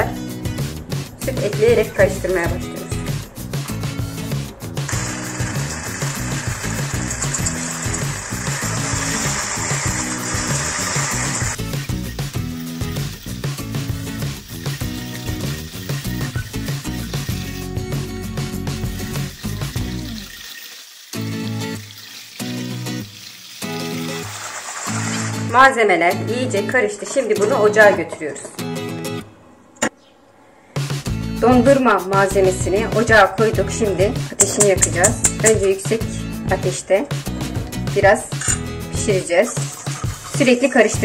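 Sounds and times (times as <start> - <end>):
background music: 0.0 - 41.0
liquid poured and whisked: 4.9 - 25.5, 39.4 - 40.8.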